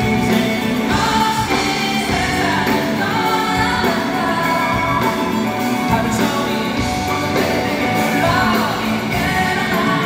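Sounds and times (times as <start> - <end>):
electric bass: 0.0 - 10.0
live band playing: 0.0 - 10.0
person singing: 0.0 - 10.0.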